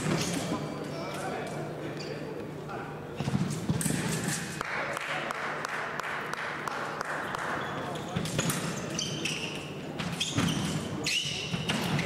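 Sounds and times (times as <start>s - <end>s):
footfalls on hall floor: 3.2s - 4.5s
short high squeaks: 7.6s - 11.8s.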